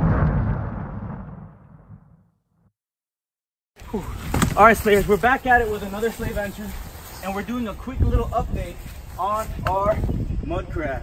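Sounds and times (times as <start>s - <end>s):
explosion boom rumble: 0.0s - 2.4s.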